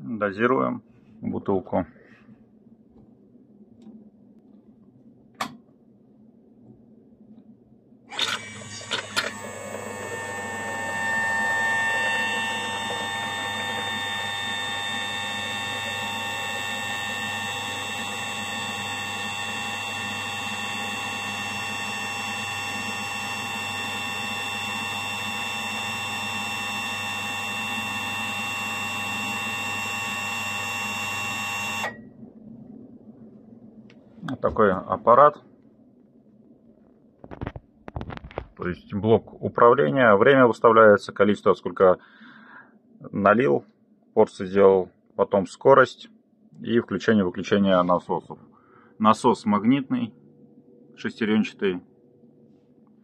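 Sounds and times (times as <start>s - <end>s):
pump motor whining: 8.1s - 32.0s.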